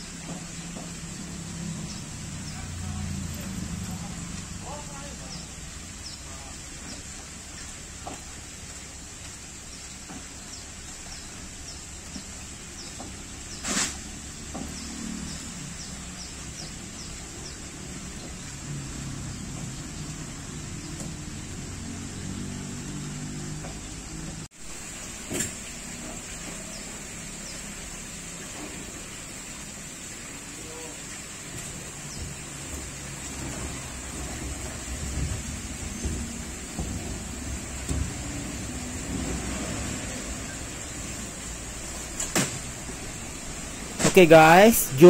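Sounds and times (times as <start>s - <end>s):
steady hiss: 0.0s - 14.4s, 24.5s - 45.0s.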